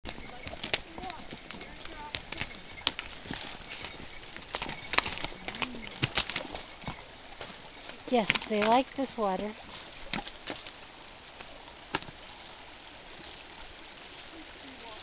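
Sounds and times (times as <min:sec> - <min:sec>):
hooves clopping on stones: 0:00.0 - 0:15.0.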